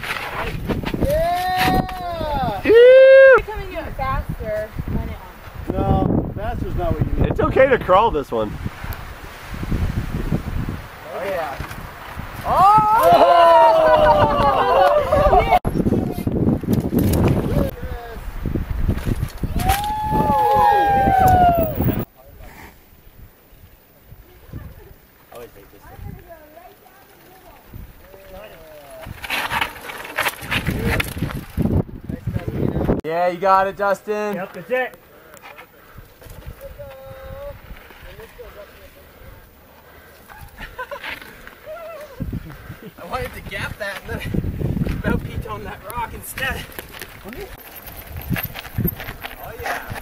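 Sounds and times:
wind buffeting microphone: 0.0 - 25.0, 27.4 - 29.6, 30.4 - 33.0, 42.1 - 50.0
people laughing: 13.0 - 15.6, 40.3 - 41.4.

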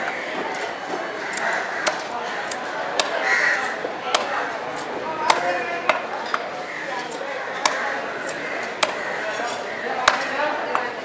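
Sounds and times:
murmur of voices: 0.0 - 11.0
knife chopping fish on wood: 7.6 - 9.0.

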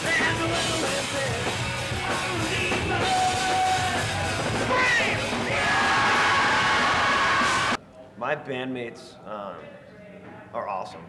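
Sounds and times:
punk rock band playing: 0.0 - 7.8
singer holding long notes: 2.0 - 7.8.

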